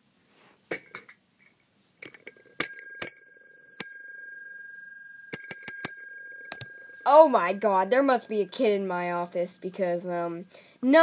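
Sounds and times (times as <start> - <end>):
bell ringing: 2.2 - 9.2.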